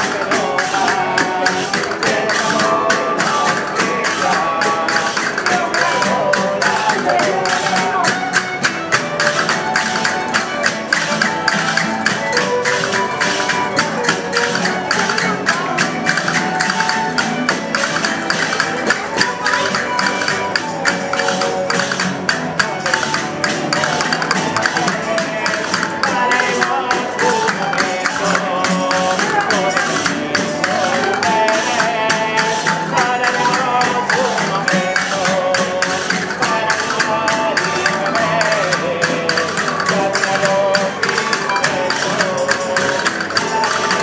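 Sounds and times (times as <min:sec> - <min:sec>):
sharp percussive strikes: 0:00.0 - 0:44.0
strummed and plucked strings: 0:00.0 - 0:44.0
violins playing melody: 0:00.0 - 0:44.0.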